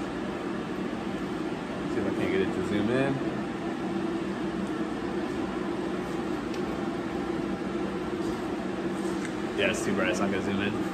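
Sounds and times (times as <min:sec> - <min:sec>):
mechanical hum with fan noise: 0:00.0 - 0:10.9.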